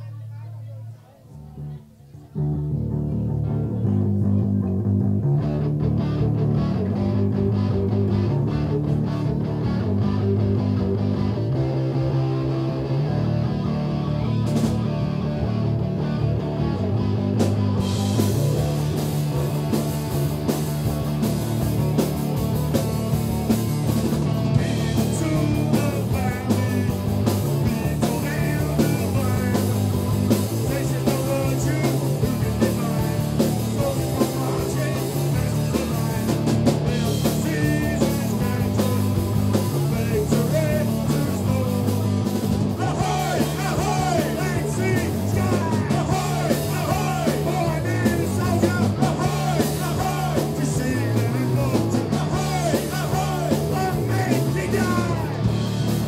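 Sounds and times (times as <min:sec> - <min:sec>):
electric guitars and bass riff: 0:02.3 - 0:56.0
drum kit: 0:03.0 - 0:56.0.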